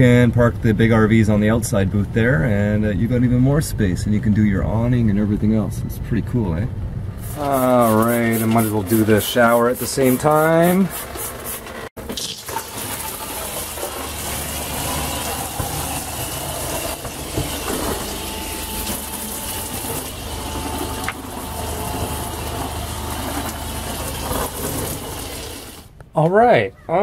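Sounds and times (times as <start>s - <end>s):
shower water on plastic walls: 7.2s - 25.9s
low hum: 12.9s - 26.1s.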